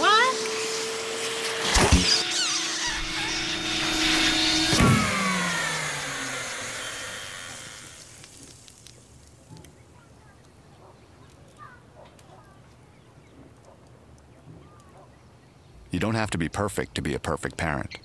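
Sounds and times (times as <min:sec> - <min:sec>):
vacuum cleaner whining: 0:00.0 - 0:08.3
high squeaky glides: 0:01.3 - 0:08.0
clunks: 0:01.6 - 0:07.2
crackle: 0:01.7 - 0:15.3.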